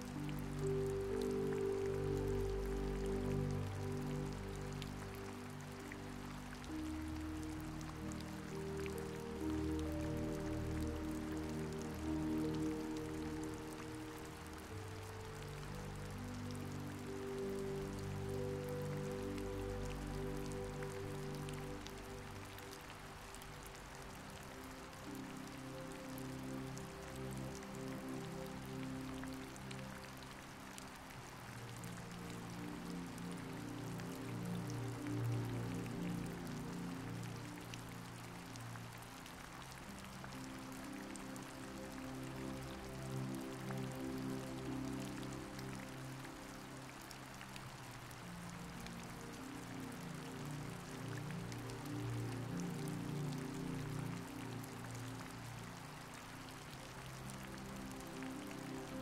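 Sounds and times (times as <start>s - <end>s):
rain pattering: 0.0s - 59.0s
soft slow background music: 0.0s - 59.0s.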